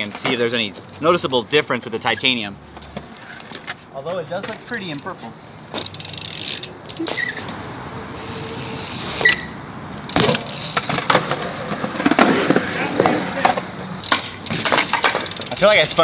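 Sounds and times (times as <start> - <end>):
bike tyres rolling on concrete: 0.0 - 16.0
bike knocks and clatters: 10.0 - 16.0.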